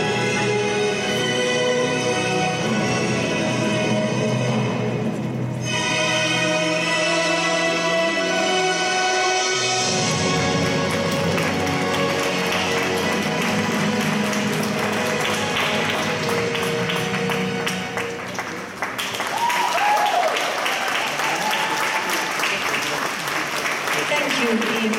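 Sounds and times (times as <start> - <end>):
figure-skating program music: 0.0 - 19.6
audience applause: 10.4 - 24.9.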